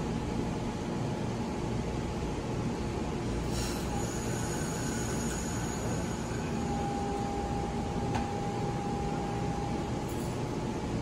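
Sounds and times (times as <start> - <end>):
train idling hum and rumble: 0.0 - 11.0
faint high whine: 3.3 - 10.4
steady tone: 3.4 - 9.9.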